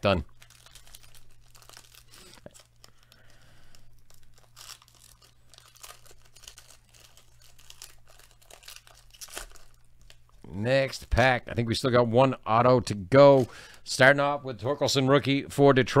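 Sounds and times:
foil wrapper crinkling and ripping: 0.0s - 11.3s.

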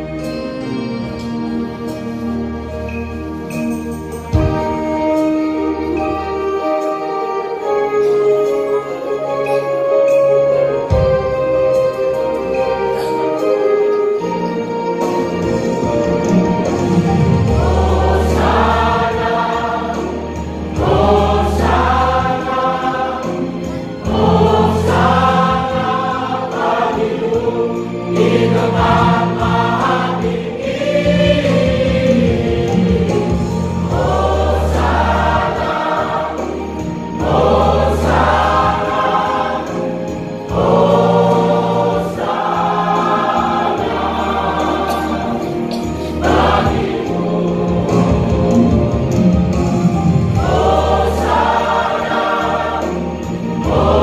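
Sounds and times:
church choir singing: 0.0s - 54.0s
instrumental accompaniment: 0.0s - 54.0s.

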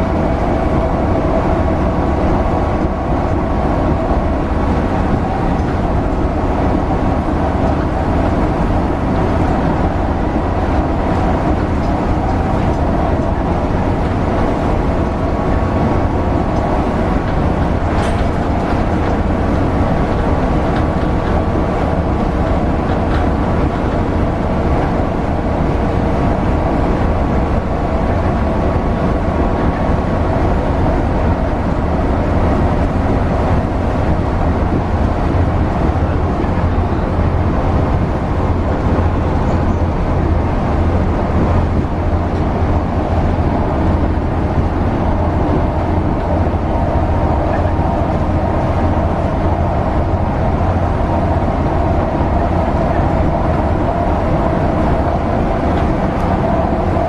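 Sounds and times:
bus engine drone: 0.0s - 57.0s
tyre and track rumble: 0.0s - 57.0s.

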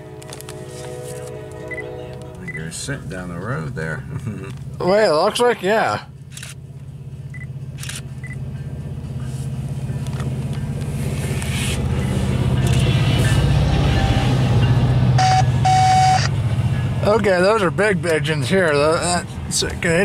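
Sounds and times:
locomotive engine rumble: 0.0s - 20.0s
short steady beeps: 1.7s - 1.9s, 15.2s - 16.3s.

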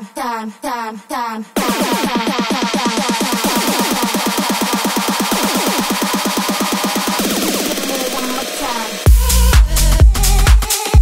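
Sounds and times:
deep bass: 7.0s - 11.0s.

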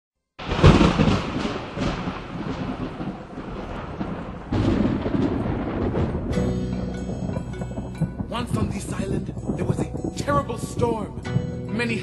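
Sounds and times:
rumbling thunder: 0.4s - 12.0s
music with deep drum rolls: 0.5s - 12.0s.

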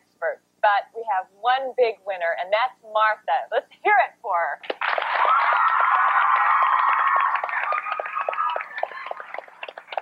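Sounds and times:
audience clapping: 4.6s - 10.0s
high-pitched cheering voices: 5.2s - 9.2s.

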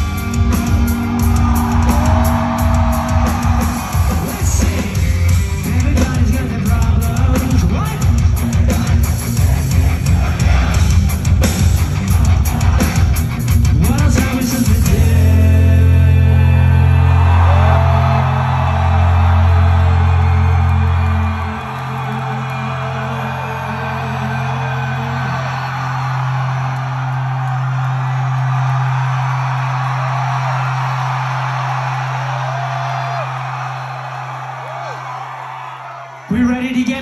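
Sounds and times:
crowd cheering and whooping: 0.0s - 37.0s.

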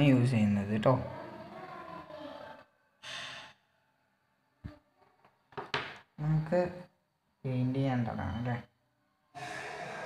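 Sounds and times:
breathy hiss: 3.0s - 3.6s, 9.4s - 10.0s.

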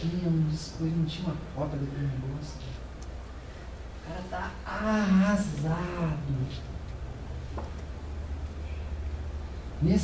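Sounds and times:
man lecturing: 0.0s - 2.8s, 4.0s - 6.7s, 9.8s - 10.0s
steady low hum: 0.0s - 10.0s.

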